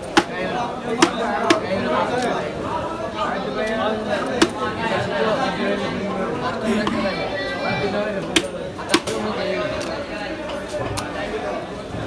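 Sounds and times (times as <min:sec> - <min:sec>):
background chatter of voices: 0:00.0 - 0:12.0.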